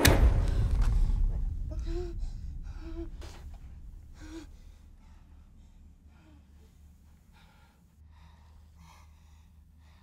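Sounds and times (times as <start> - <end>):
low rumble: 0.0 - 7.9.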